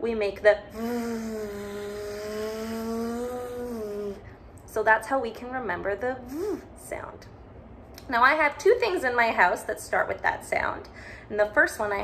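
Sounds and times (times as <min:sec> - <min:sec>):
woman imitating engine sound: 0:00.6 - 0:04.3, 0:06.2 - 0:06.7.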